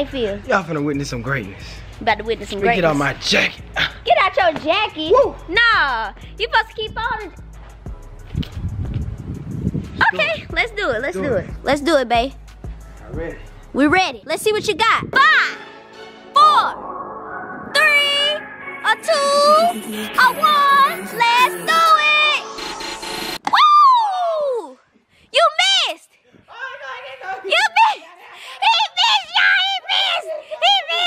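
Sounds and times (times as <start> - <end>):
wind rumble on microphone: 8.3 - 10.6
rising whoosh: 16.3 - 23.4
high voice-like note: 16.4 - 23.2
voice-like tone gliding down: 16.5 - 23.1.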